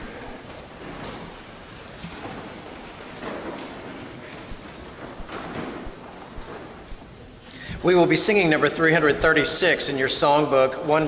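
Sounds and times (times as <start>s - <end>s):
rustles and shuffles: 0.0s - 7.9s
steady hiss: 0.0s - 11.0s.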